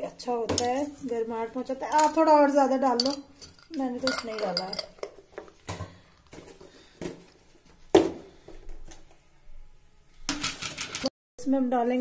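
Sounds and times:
steel spoon clinking against pan: 3.0s - 5.0s.

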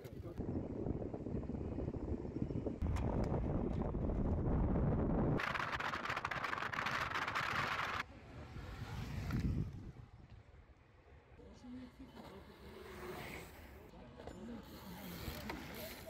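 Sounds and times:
wind rushing over microphone: 0.0s - 10.5s.

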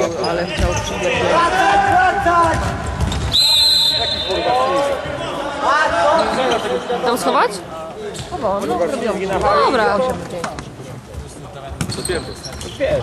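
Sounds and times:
people shouting in a hall: 1.0s - 6.6s.

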